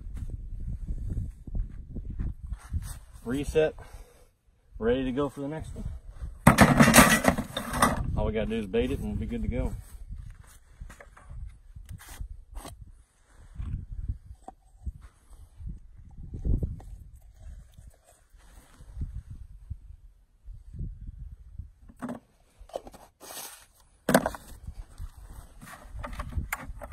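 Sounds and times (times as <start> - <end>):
handling clicks and scrapes: 6.5 - 8.0, 21.9 - 26.9.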